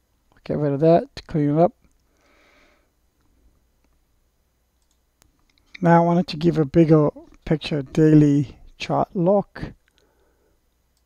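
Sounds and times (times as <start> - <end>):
computer mouse clicking: 4.8 - 5.7.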